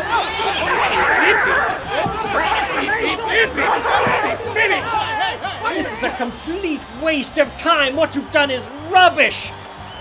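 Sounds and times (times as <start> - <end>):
voices chattering and exclaiming: 0.0 - 9.1.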